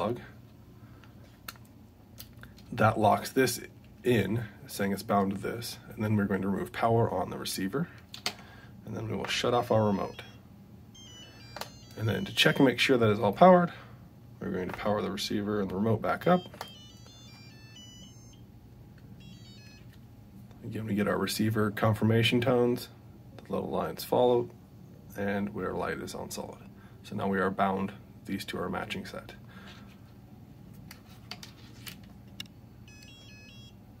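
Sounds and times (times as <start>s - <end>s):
electronic power-up tune: 11.0s - 12.8s, 16.6s - 18.4s, 19.2s - 19.8s.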